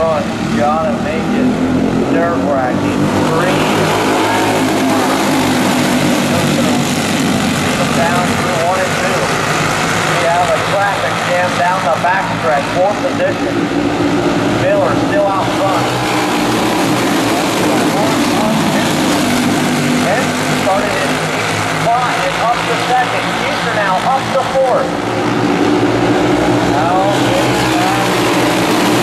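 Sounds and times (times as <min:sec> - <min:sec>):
announcer's voice: 0:00.0 - 0:09.5, 0:10.1 - 0:13.8, 0:14.6 - 0:16.3, 0:17.3 - 0:25.0, 0:26.6 - 0:29.0
racing kart engines buzzing: 0:00.0 - 0:29.0.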